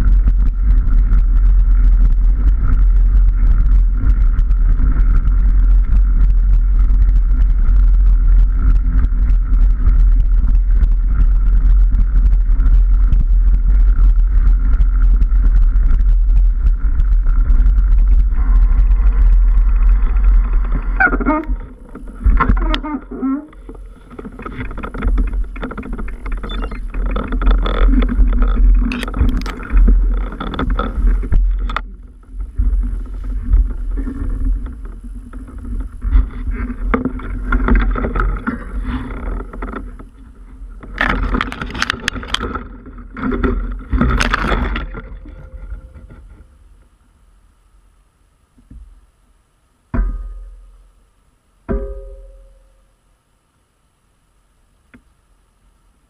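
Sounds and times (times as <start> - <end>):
wind on microphone: 0.0 - 46.8
bike clattering over bumps: 0.0 - 47.0
steady hum: 0.0 - 56.0.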